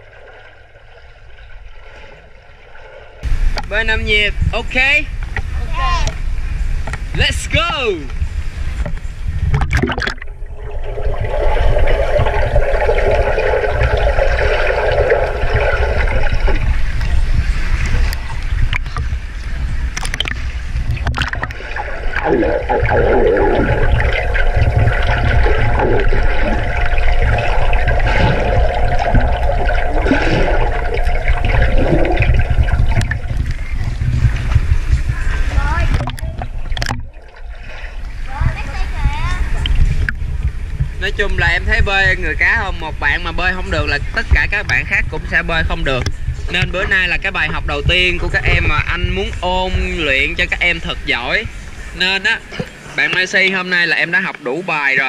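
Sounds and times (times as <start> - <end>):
swimmers bubbling and kicking: 0.0 - 3.6, 8.2 - 53.0
underwater rumble and hum: 0.0 - 53.0.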